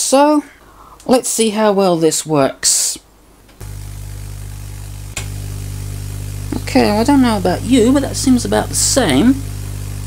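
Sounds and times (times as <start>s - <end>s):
spark streamers hissing: 3.6s - 10.0s
tesla coil buzzing: 3.6s - 10.0s.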